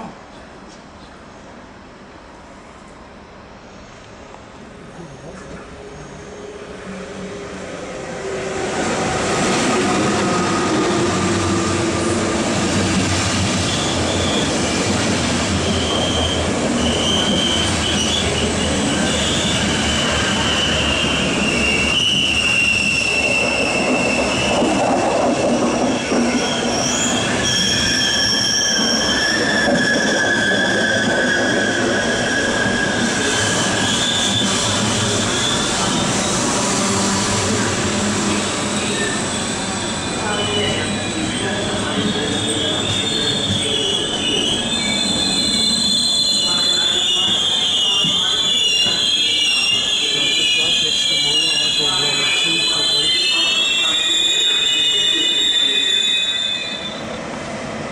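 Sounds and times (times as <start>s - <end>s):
train coaches rolling past: 0.0s - 57.9s
wheel squeal: 15.6s - 36.4s, 38.8s - 57.2s.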